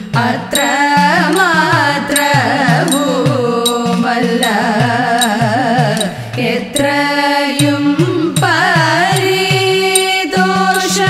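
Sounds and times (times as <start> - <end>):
women singing: 0.0 - 11.0.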